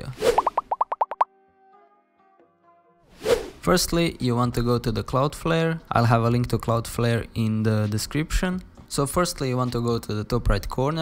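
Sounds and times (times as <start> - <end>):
rising bloop tones: 0.3 - 1.2.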